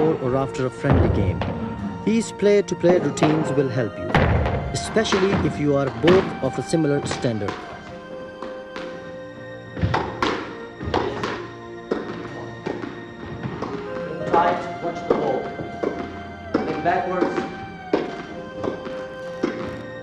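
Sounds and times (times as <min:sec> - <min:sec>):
background music: 0:00.0 - 0:20.0
squash ball hitting rackets and wall: 0:03.1 - 0:06.5, 0:09.8 - 0:14.4, 0:15.1 - 0:19.8.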